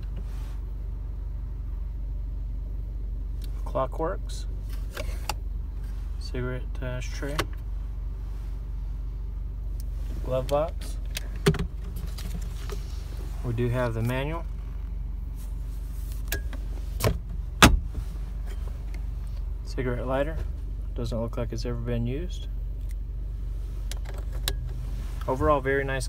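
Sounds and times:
steady low hum: 0.0s - 26.0s
glove box latch clicking open: 4.8s - 5.4s, 16.2s - 17.8s.

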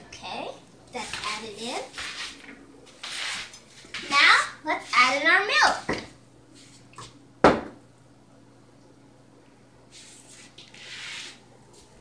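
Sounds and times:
child's voice: 4.0s - 5.9s
dish set down on counter: 7.4s - 7.8s.

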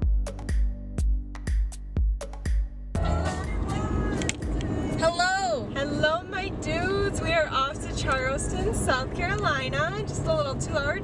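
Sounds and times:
car cabin road and engine noise: 2.9s - 11.0s
woman talking: 5.0s - 11.0s.

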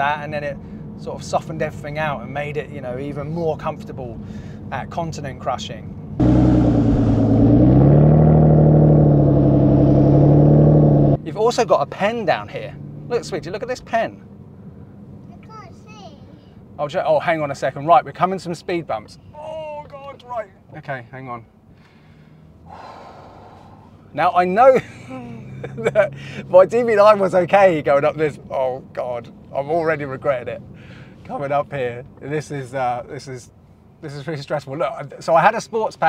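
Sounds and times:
low car engine hum: 0.0s - 16.9s, 21.4s - 32.3s
car exhaust at raised revs: 6.2s - 11.2s
person's drawn-out breath: 21.8s - 24.1s.

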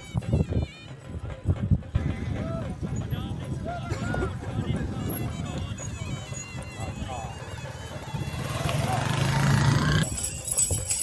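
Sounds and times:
crowd voices: 0.0s - 10.8s.

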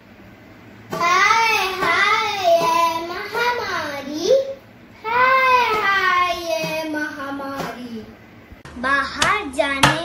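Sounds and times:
child chanting: 1.0s - 8.2s.

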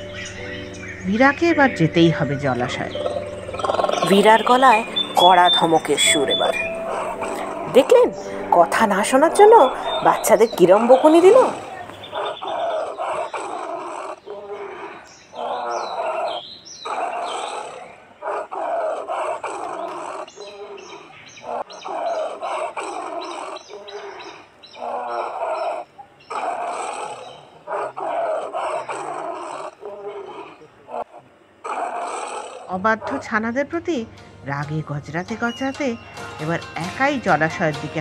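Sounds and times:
tiger growling and calling: 0.0s - 33.6s.

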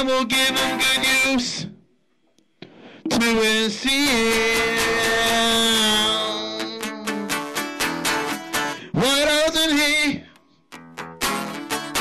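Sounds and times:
strummed guitar chords: 0.0s - 1.4s, 2.9s - 12.0s.

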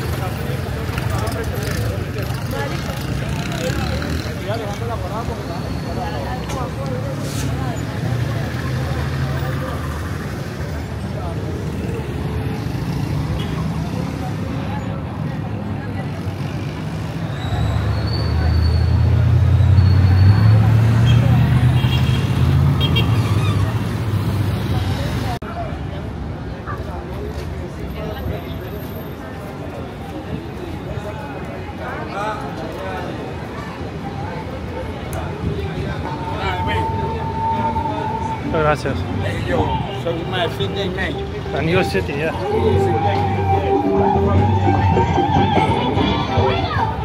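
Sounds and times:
cars and motorcycles passing: 0.0s - 30.3s, 31.8s - 47.0s
passers-by talking: 0.0s - 47.0s.

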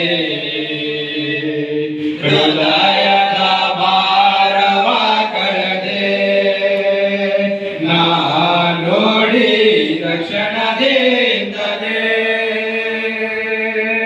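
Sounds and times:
men singing into a microphone: 0.0s - 14.0s.

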